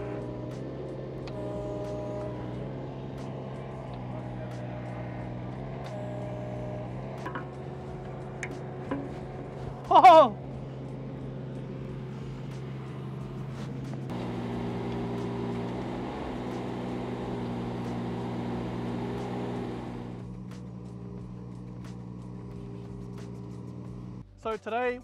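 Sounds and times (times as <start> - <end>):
excavator diesel engine running: 0.0 - 24.2
hydraulics working: 0.0 - 24.2.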